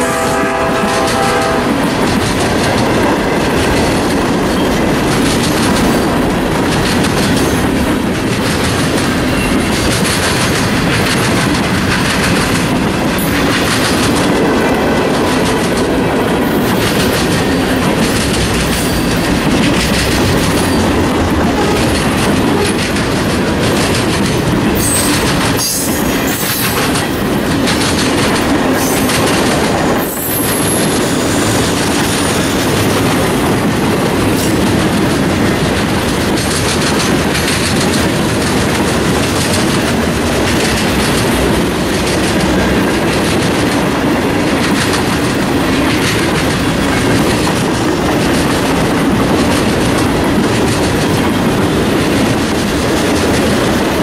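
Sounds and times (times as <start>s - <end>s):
train wheels clattering over rail joints: 0.2s - 54.0s.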